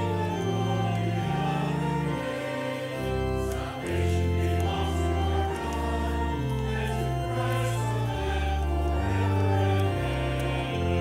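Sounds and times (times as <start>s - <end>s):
congregation singing a hymn: 0.0s - 11.0s
organ playing sustained chords: 0.0s - 11.0s.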